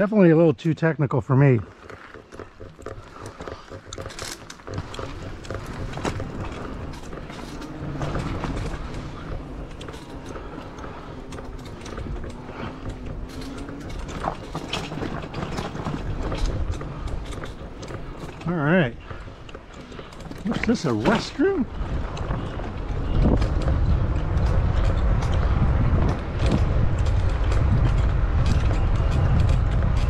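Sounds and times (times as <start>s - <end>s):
bike clicks and rattles: 0.0s - 30.0s
tyres rumbling over dirt: 0.0s - 30.0s.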